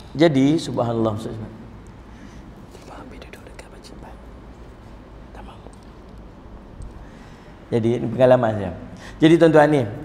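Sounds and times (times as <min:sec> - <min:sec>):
steady low hum: 0:00.0 - 0:10.0
man speaking quietly: 0:02.8 - 0:04.3.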